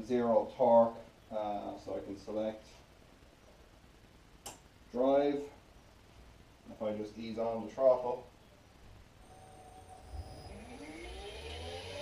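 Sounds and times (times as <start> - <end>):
electric motor whine rising: 9.2 - 12.0.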